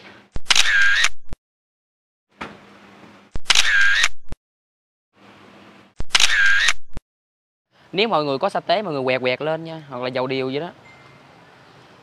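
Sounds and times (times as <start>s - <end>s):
camera shutter clicks: 0.4s - 1.4s, 3.4s - 4.4s, 6.0s - 7.0s.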